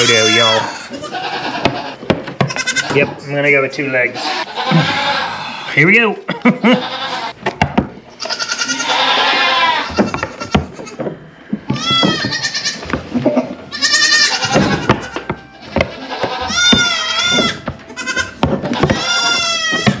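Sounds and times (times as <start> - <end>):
goats bleating: 0.0 - 7.4, 8.1 - 20.0
knocks and clatter: 14.4 - 20.0.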